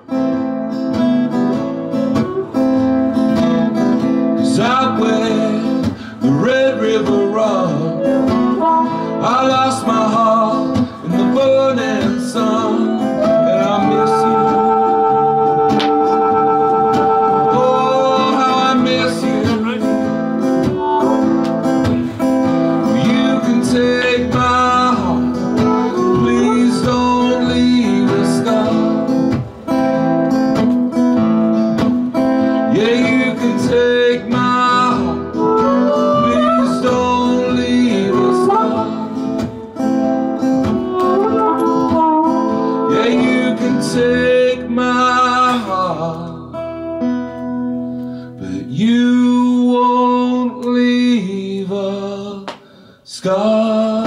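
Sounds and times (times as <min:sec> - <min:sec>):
strummed acoustic guitar: 0:00.0 - 0:54.0
harmonica solo: 0:01.6 - 0:04.2, 0:07.9 - 0:10.3, 0:12.6 - 0:22.9, 0:25.3 - 0:27.9, 0:35.0 - 0:43.7.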